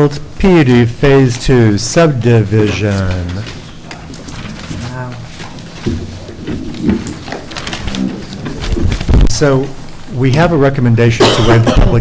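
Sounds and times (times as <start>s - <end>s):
papers rustling and shuffling: 1.2s - 10.0s.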